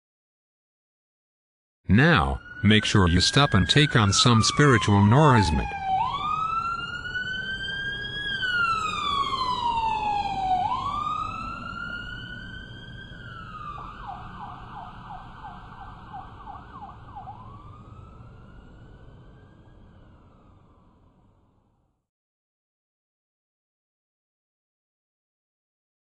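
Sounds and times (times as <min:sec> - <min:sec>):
police siren wailing and yelping: 0:01.9 - 0:21.1.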